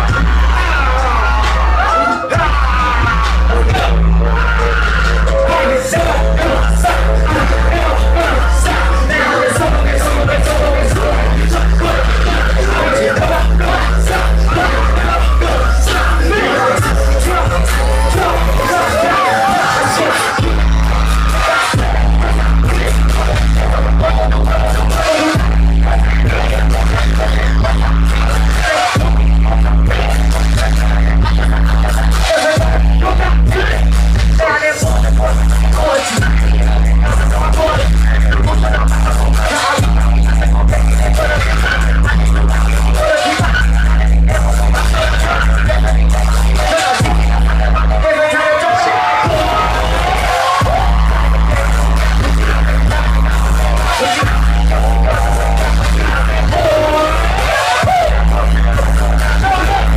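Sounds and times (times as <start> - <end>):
heavy bass: 0.0 - 59.9
loud live music through pa: 0.0 - 59.9.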